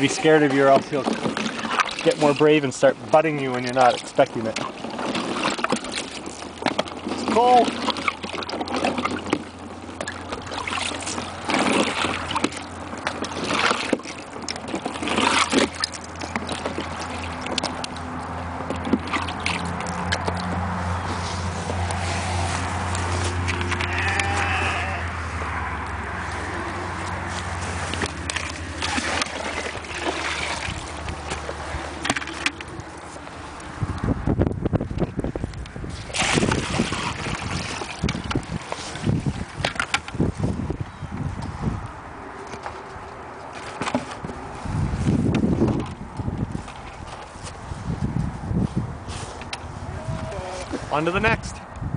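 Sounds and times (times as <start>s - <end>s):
water poured splashing into tub: 0.2s - 2.6s, 10.0s - 17.7s, 27.9s - 32.5s, 36.0s - 39.5s.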